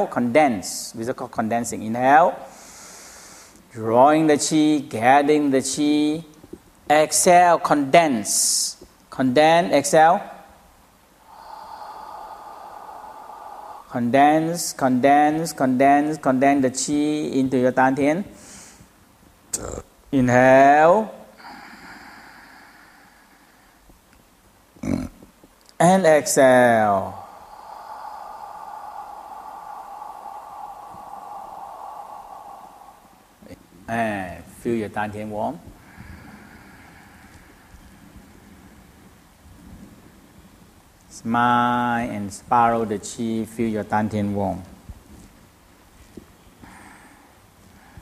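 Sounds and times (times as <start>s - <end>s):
man exhaling slowly: 2.5s - 3.6s, 11.2s - 15.0s, 21.3s - 24.0s, 26.3s - 34.0s, 35.5s - 39.3s, 46.5s - 48.0s.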